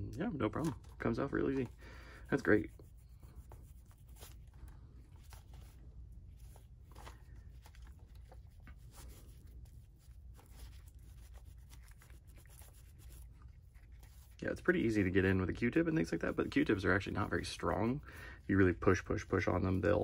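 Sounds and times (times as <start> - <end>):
paper towel scrubbing plastic: 0.2 - 20.0.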